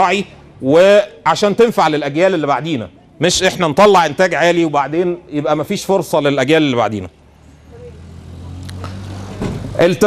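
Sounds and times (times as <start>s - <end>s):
man talking: 0.0s - 7.2s, 9.8s - 10.0s.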